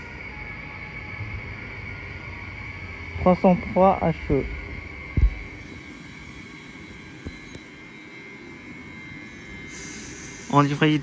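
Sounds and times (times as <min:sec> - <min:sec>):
electric train whine and rumble: 0:00.0 - 0:11.0.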